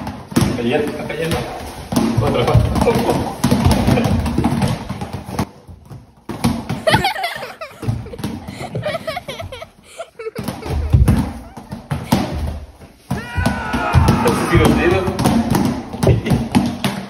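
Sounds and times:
foam balls bouncing on tile: 0.0 - 17.0.

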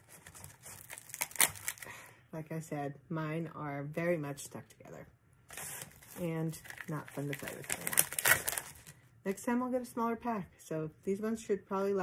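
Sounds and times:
velcro peeling apart: 0.2 - 1.8, 5.8 - 8.9.

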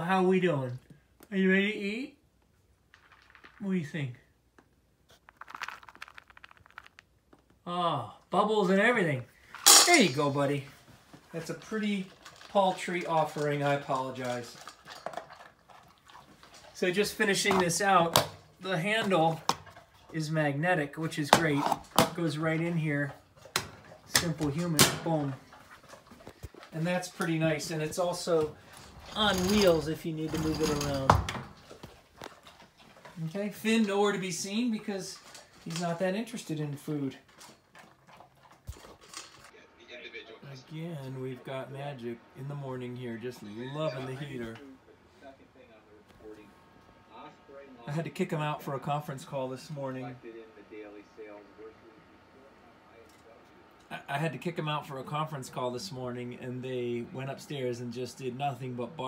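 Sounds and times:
dry kibble rattling into a bowl: 2.9 - 3.9, 5.1 - 7.1.

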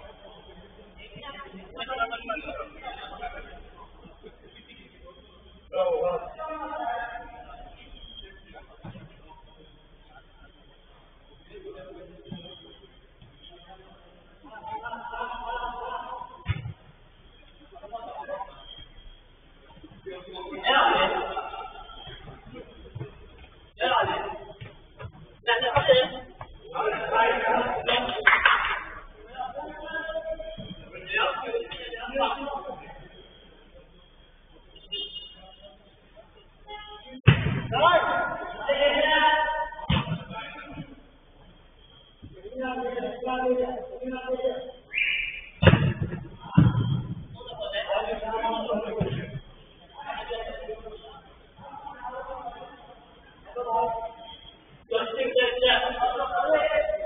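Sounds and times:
loud heavy thumps: 37.3 - 37.8, 45.6 - 47.4.

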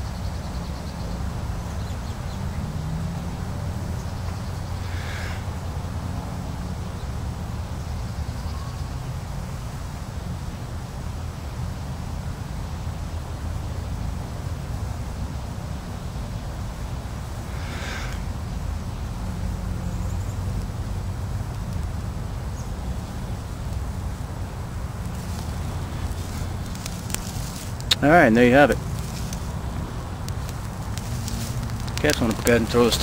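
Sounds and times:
grass crackling as it burns: 1.8 - 6.4, 16.4 - 33.0
blowing on tinder: 17.4 - 18.3.

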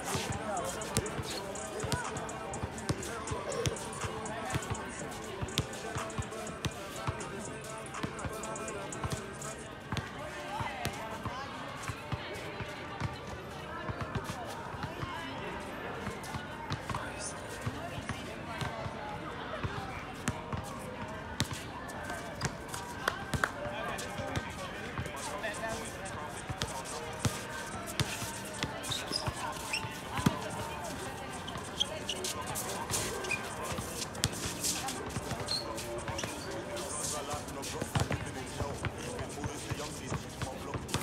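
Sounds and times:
players' voices: 0.0 - 41.0.

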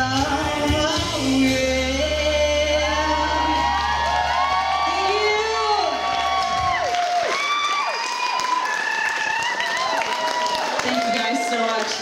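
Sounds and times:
audience whooping and cheering: 2.8 - 12.0.

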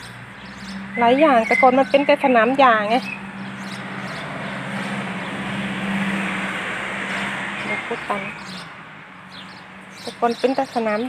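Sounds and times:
car driving past: 3.0 - 10.0.

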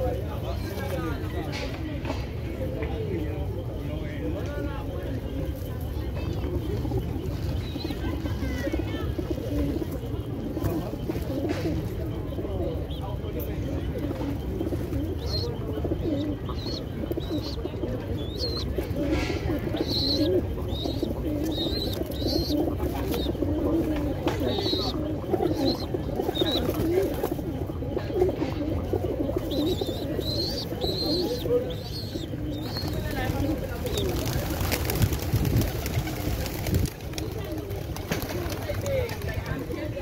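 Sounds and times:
pigeons cooing: 0.0 - 40.0.

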